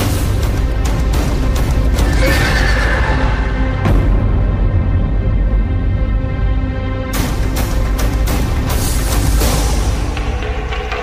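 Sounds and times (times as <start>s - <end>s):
orchestral film score: 0.0s - 11.0s
horse whinnying: 2.0s - 3.6s.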